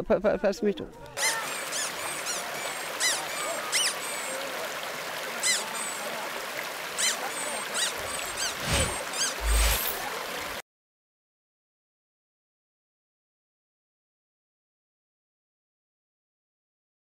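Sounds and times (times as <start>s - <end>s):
birds chirping: 1.2s - 4.6s, 5.4s - 10.5s
steady rushing background: 8.0s - 10.0s.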